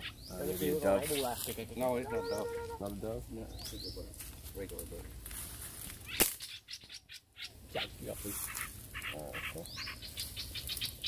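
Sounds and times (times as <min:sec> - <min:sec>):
high bird chirps: 0:02.0 - 0:02.8, 0:06.0 - 0:11.0
slingshot snap: 0:06.2 - 0:06.4.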